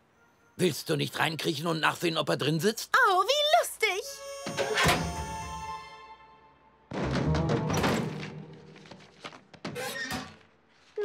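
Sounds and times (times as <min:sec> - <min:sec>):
cartoon music: 0:04.2 - 0:05.8.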